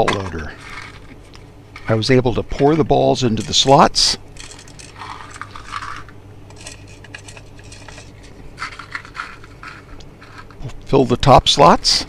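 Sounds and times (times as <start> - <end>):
plastic balls clicking and rattling: 4.4 - 10.6.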